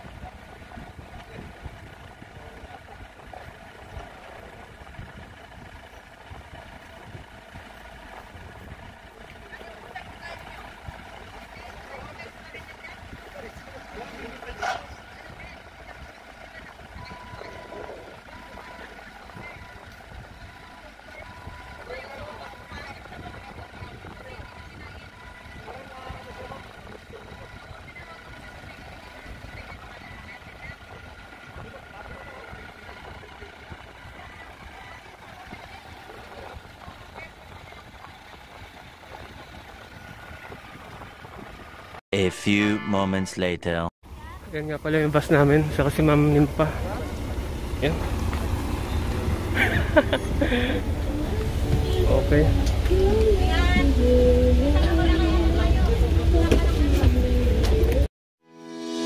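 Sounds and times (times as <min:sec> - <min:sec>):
distant forklift engines rumbling: 0:00.0 - 0:42.0, 0:44.1 - 0:58.1.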